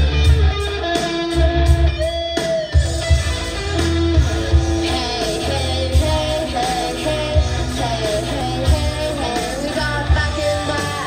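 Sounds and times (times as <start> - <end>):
electric guitar lead notes: 0.0 - 11.0.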